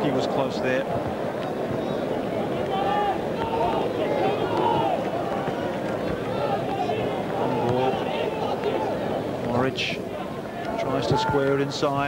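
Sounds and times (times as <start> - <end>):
stadium crowd din: 0.0 - 12.0
voices calling and shouting: 0.0 - 12.0.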